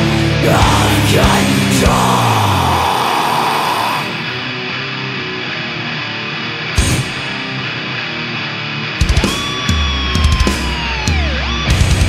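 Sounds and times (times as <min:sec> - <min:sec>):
distorted guitar chord ringing: 0:04.1 - 0:12.0.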